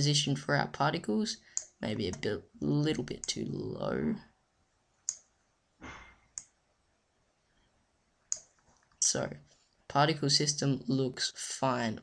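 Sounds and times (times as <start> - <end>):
computer mouse clicks: 5.0 - 5.3, 8.3 - 9.0.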